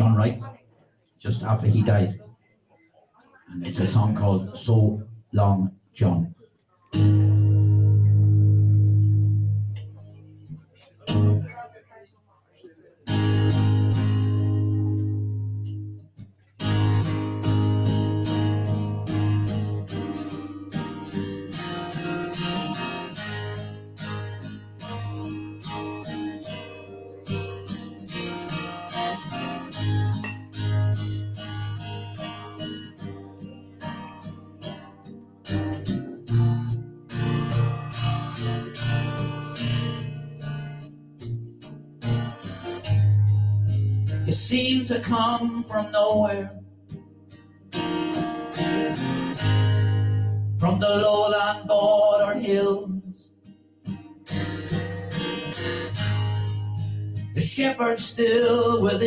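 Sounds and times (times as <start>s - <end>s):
acoustic guitar strumming: 6.9s - 11.8s, 13.0s - 59.0s.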